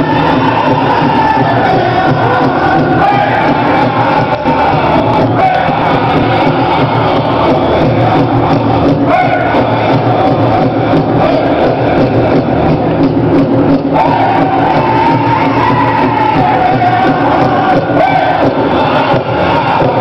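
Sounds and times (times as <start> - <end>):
crowd chatter: 0.0 - 20.0
group singing high held pitch: 0.0 - 20.0
large drum steady beat: 0.0 - 20.0.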